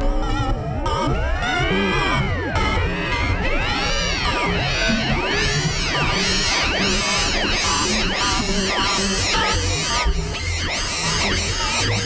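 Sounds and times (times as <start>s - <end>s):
choppy low drone: 0.0s - 12.0s.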